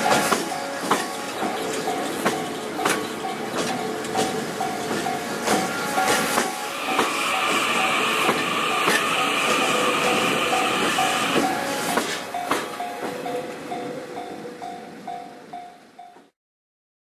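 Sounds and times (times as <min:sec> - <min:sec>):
train wheels clicking over rail joints: 0:00.0 - 0:16.3.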